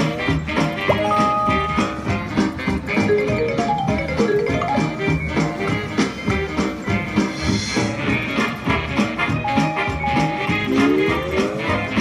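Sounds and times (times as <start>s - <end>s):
slot machine music with beat: 0.8s - 6.0s
held chime chord: 0.9s - 2.1s.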